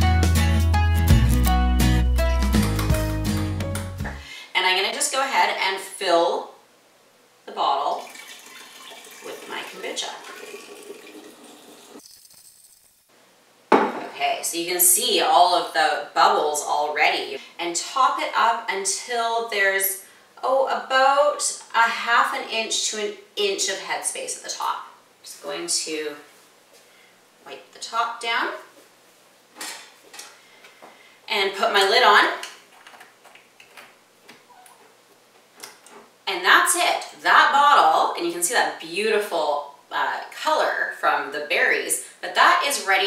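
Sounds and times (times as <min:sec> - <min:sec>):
liquid pouring and splashing: 0:07.9 - 0:12.5.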